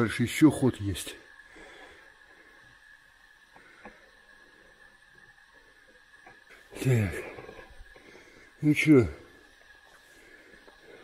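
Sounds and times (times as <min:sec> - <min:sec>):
faint steady hiss: 0:00.0 - 0:11.0
thin high whine: 0:00.0 - 0:11.0.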